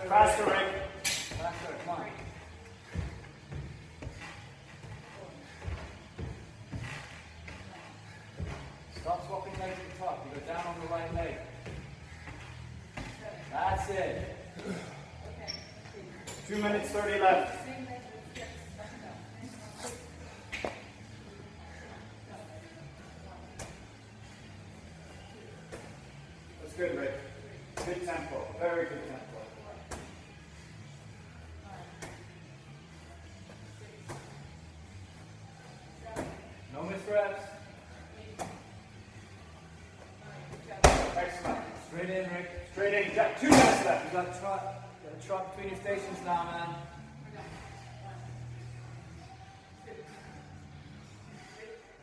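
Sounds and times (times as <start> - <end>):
faint background music: 0.0 - 52.0
medicine ball thudding against wall: 40.7 - 41.6.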